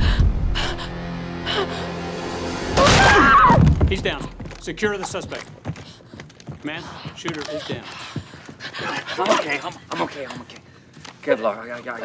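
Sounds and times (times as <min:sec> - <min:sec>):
tense score of low notes: 0:00.0 - 0:05.0.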